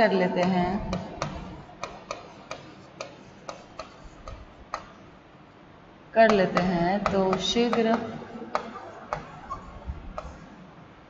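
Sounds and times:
stylus tapping on writing surface: 0.4s - 5.0s, 6.3s - 9.4s, 10.2s - 10.4s.

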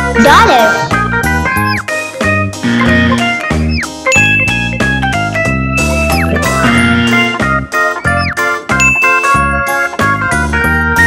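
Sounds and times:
children's background music: 0.0s - 11.0s
bright ding: 8.8s - 9.5s.

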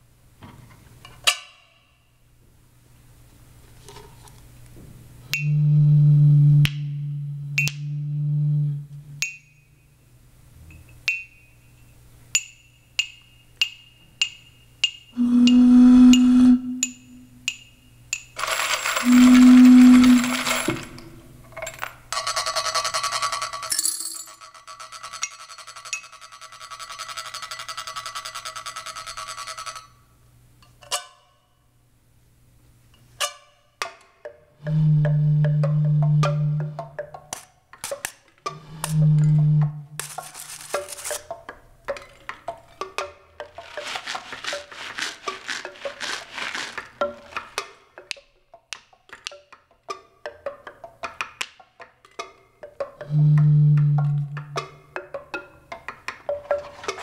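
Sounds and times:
low held tones: 5.2s - 10.0s, 15.2s - 17.5s, 19.0s - 20.4s, 34.6s - 36.9s, 38.5s - 40.0s, 53.0s - 54.6s.

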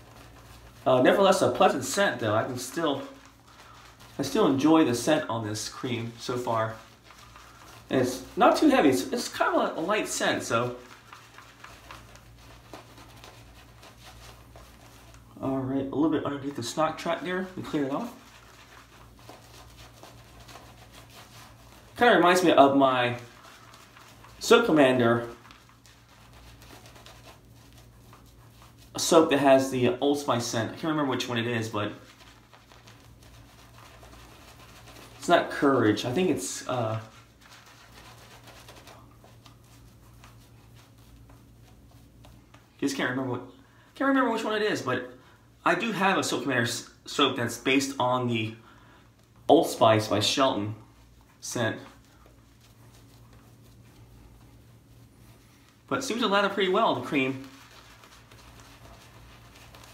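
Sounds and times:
shaving brush swishing on skin: 0.0s - 43.4s, 49.2s - 59.9s
low steady hum: 0.0s - 59.9s.

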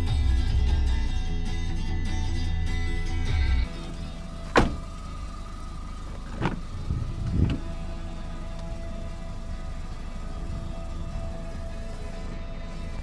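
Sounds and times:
car door clunk: 3.7s - 5.3s, 6.0s - 7.7s
quiet background music: 7.6s - 13.0s.

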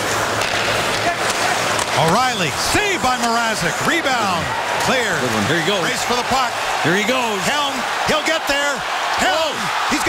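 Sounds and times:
hockey sticks and puck clacking: 0.0s - 3.7s
arena crowd noise: 0.0s - 10.0s.

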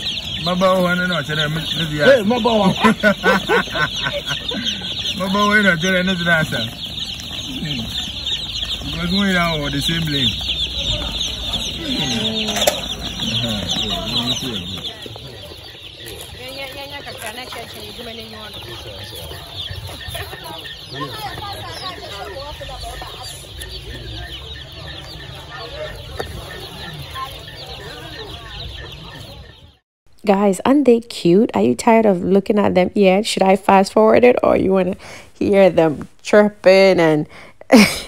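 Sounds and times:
chicks peeping: 0.0s - 29.8s
voices: 0.0s - 38.0s.

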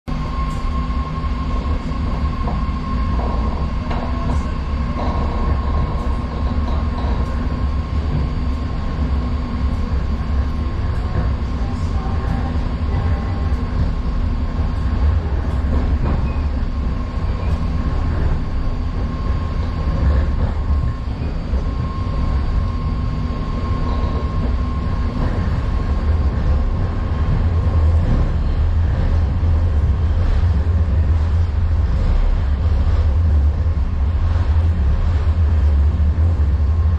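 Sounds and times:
train car rumble on rails: 0.0s - 36.9s
thin steady whine: 0.1s - 36.9s.

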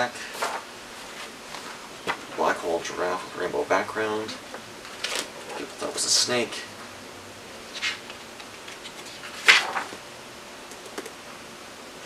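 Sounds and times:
paper sheets rustling: 0.2s - 2.6s, 4.8s - 6.2s, 7.7s - 10.0s.

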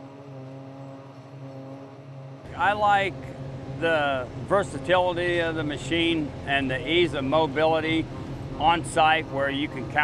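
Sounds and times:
diesel engine droning: 0.0s - 10.0s.

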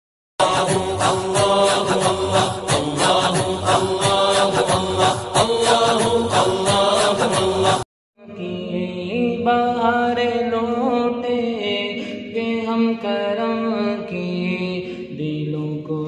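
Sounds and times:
chanted vocal music: 0.4s - 16.0s.

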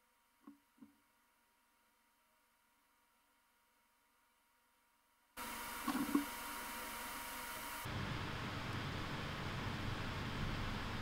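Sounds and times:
low hum: 0.0s - 11.0s
steady background hiss: 0.0s - 11.0s.

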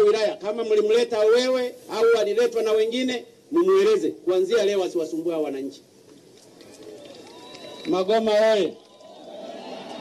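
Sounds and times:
man speaking into a microphone: 0.0s - 5.9s, 7.9s - 8.8s.

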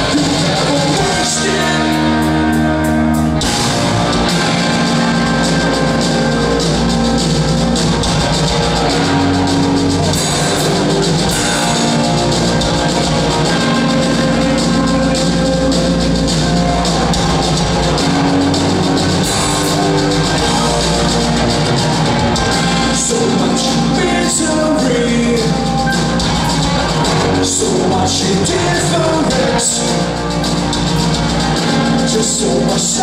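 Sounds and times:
bass guitar: 0.0s - 33.0s
drum kit: 0.0s - 33.0s
electric guitars: 0.0s - 33.0s.

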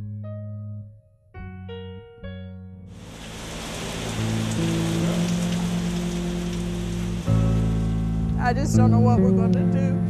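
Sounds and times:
heavy rain falling: 2.9s - 8.1s
low music chords: 3.0s - 10.0s.

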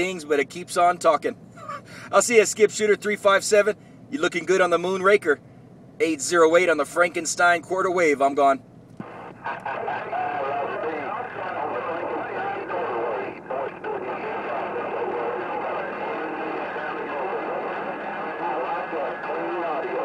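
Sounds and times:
muffled voice over radio speaker: 9.0s - 20.0s
radio static hiss: 9.0s - 20.0s.

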